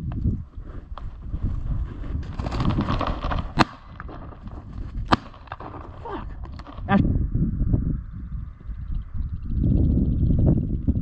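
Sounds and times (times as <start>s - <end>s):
dry reeds rustling and crackling: 1.0s - 7.0s.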